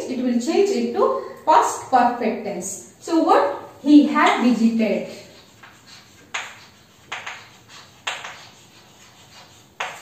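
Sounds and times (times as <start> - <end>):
chalk writing on blackboard: 3.9 - 10.0.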